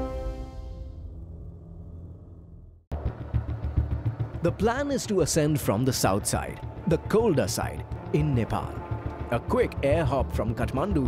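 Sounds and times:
intro music: 0.0 - 11.0.

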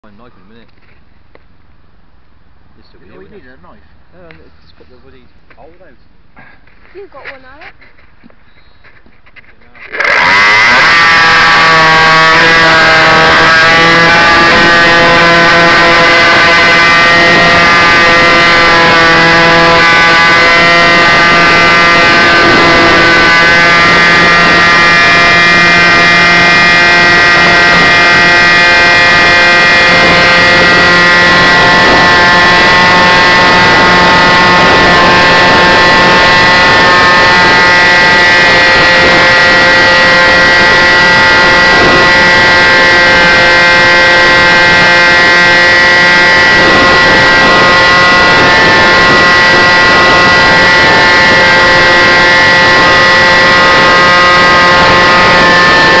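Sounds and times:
model aircraft motor buzzing: 7.0 - 56.0.

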